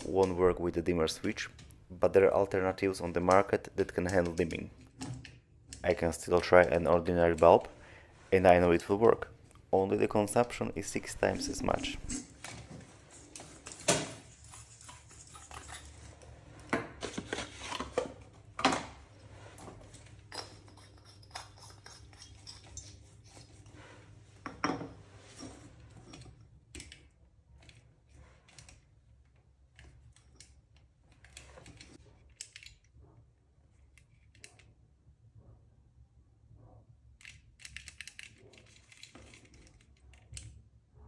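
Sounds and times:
objects set down on countertop: 24.4 - 25.0.

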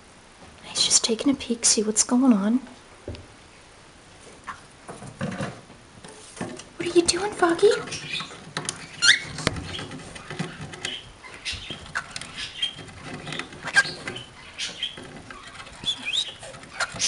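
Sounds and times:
parrots chirping and squeaking: 6.8 - 17.0.

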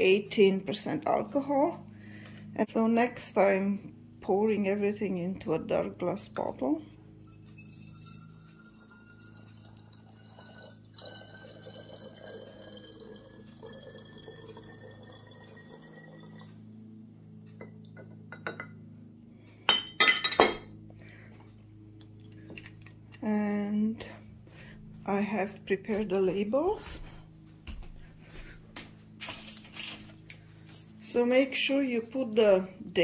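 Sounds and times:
liquid pouring into glass bottle: 7.0 - 16.5
glass clinks: 19.7 - 20.7.

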